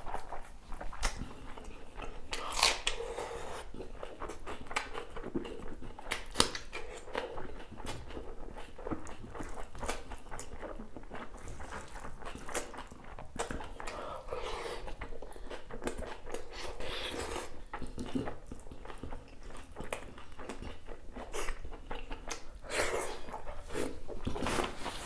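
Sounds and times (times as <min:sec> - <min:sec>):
wet chewing smacks: 0:00.0 - 0:24.7
biting and crunching onion: 0:02.3 - 0:24.8.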